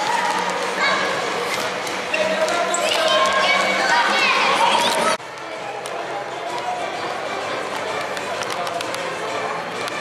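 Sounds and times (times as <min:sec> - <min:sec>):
chatter echoing in hall: 0:00.0 - 0:10.0.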